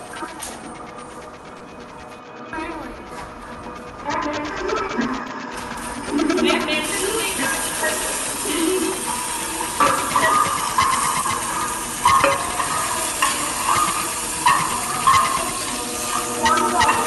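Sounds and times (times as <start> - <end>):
food sizzling in a pan: 10.2 - 15.3.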